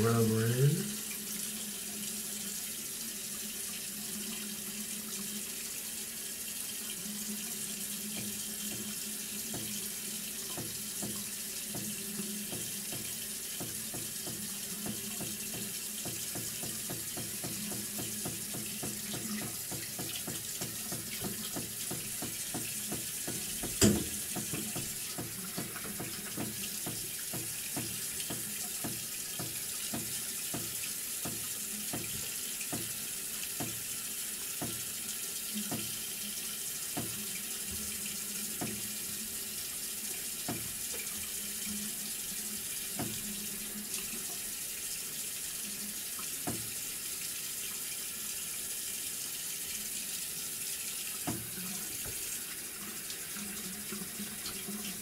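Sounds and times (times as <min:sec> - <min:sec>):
tap running into sink: 0:08.1 - 0:33.9, 0:34.5 - 0:36.1, 0:36.9 - 0:39.0, 0:40.4 - 0:41.9, 0:42.7 - 0:44.4, 0:46.2 - 0:46.8, 0:51.1 - 0:55.0.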